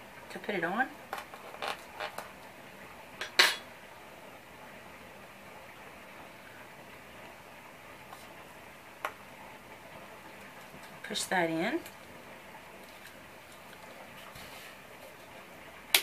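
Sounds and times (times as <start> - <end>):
low background hiss: 0.0 - 16.0.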